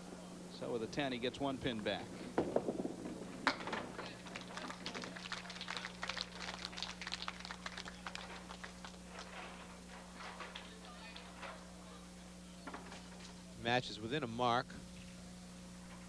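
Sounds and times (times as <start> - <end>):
steady low hum: 0.0 - 16.0
audience applause: 4.0 - 9.3.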